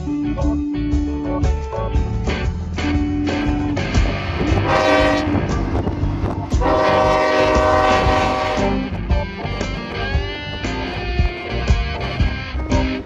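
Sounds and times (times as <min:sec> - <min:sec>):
train rumbling past: 0:02.6 - 0:13.0
locomotive air horn blasts: 0:04.4 - 0:05.7, 0:06.5 - 0:09.0.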